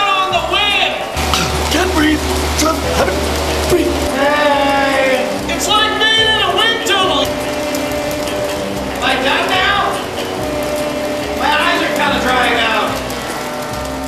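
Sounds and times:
background music with held chords: 0:00.3 - 0:14.0
garbled wordless voice bursts: 0:01.2 - 0:07.3.

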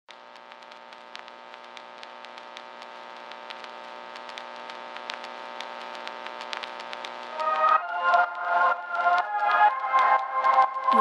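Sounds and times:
crackling clicks: 0:00.1 - 0:11.0.

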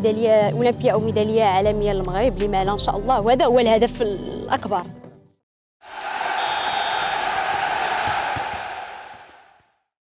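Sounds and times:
crowd cheering: 0:05.8 - 0:09.8.

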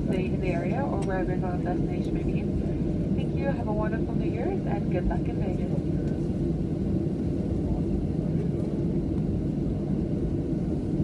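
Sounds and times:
airplane cabin rumble while taxiing: 0:00.0 - 0:11.0.

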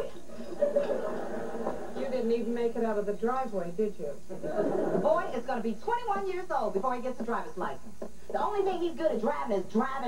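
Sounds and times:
studio audience laughing: 0:00.0 - 0:02.0.

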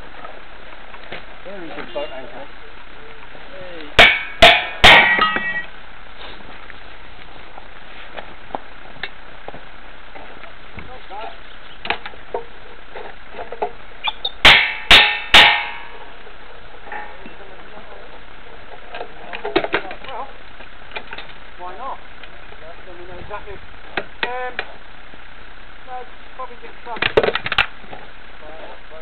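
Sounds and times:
sharp metal-on-metal blows: 0:04.0 - 0:05.7, 0:14.0 - 0:16.0
tools knocking and clanking: 0:04.0 - 0:05.7.

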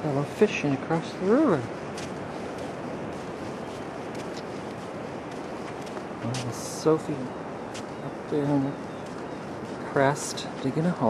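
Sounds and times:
wind rushing across microphone: 0:00.0 - 0:11.0.

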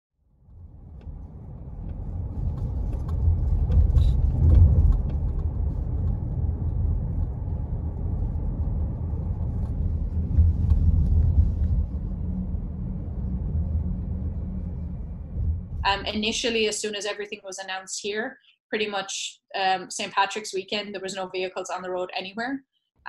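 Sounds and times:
car road and engine rumble: 0:00.4 - 0:16.1
faint clicks and rattles: 0:00.9 - 0:11.8.

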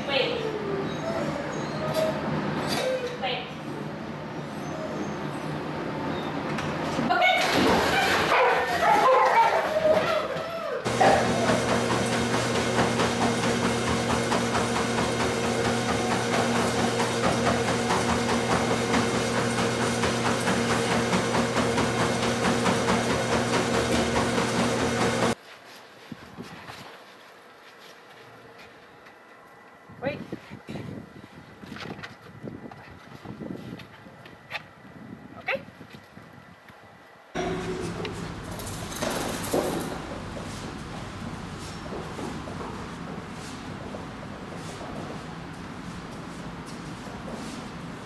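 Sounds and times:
dogs whining: 0:00.3 - 0:03.2, 0:04.2 - 0:06.3, 0:08.0 - 0:11.6
dogs barking: 0:08.0 - 0:11.9
treadmill motor hum: 0:09.1 - 0:25.4, 0:37.4 - 0:48.0.

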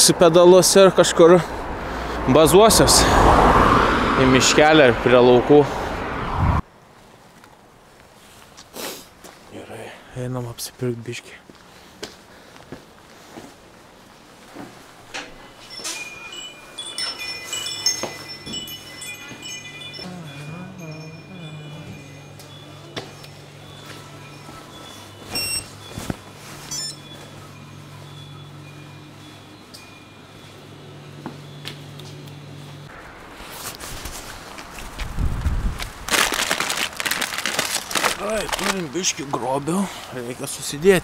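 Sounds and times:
door chimes ringing: 0:15.2 - 0:31.7
plastic bags crinkling: 0:35.8 - 0:39.2.

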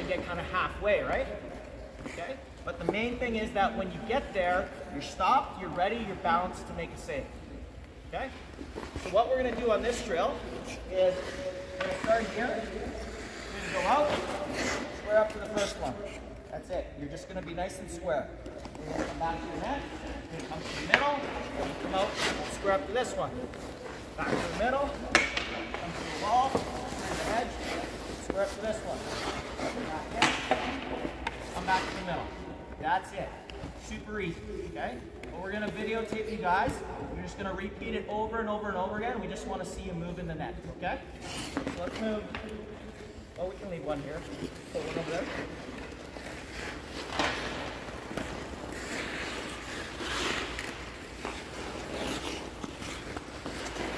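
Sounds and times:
goalie gear rustling: 0:00.0 - 0:37.9, 0:41.0 - 0:53.9
skate blades scraping ice: 0:08.3 - 0:16.3, 0:18.8 - 0:32.4, 0:43.6 - 0:53.9.

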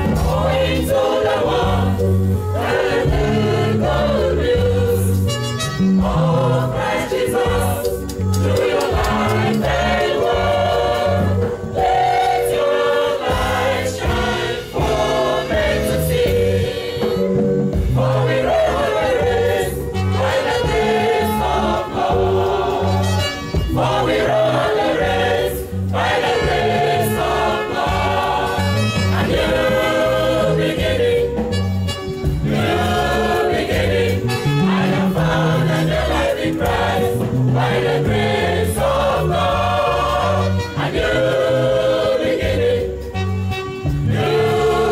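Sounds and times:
beat-driven accompaniment: 0:00.0 - 0:44.9
choir singing gospel: 0:00.0 - 0:44.9.

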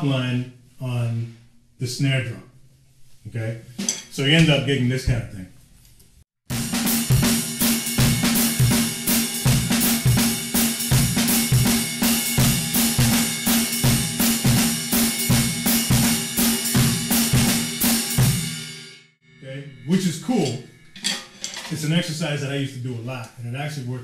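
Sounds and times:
drum kit playing swing: 0:06.5 - 0:18.9.

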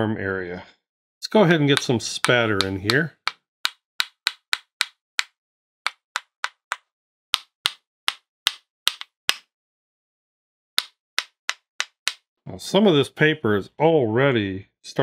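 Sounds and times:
brush tapping against brush: 0:01.7 - 0:06.8, 0:07.4 - 0:09.5, 0:10.8 - 0:12.2.

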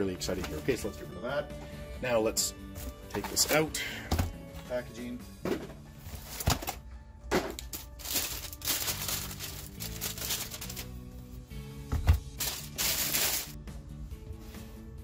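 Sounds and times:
background music: 0:00.0 - 0:15.0
plastic sleeve rustling and crinkling: 0:07.6 - 0:11.0, 0:12.4 - 0:13.6.

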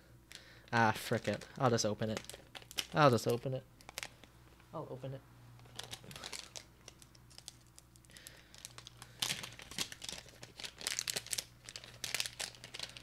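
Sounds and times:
packet crinkling and tearing: 0:01.0 - 0:04.3, 0:05.6 - 0:13.0.

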